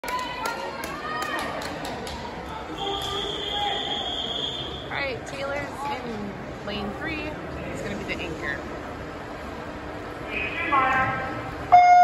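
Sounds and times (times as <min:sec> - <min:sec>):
high steady whistle: 0:02.8 - 0:04.9.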